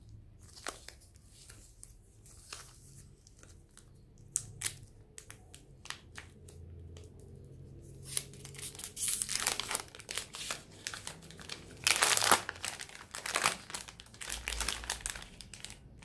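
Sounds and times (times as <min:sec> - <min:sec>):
wrapper and foil crinkling: 0:08.0 - 0:16.0.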